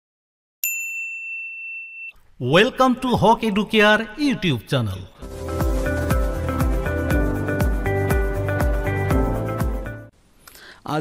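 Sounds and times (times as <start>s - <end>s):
bright bell ding: 0.6s - 2.2s.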